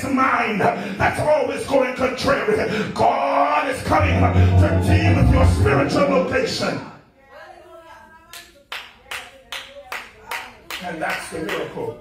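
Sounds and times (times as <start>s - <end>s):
hand clapping: 8.3s - 11.9s.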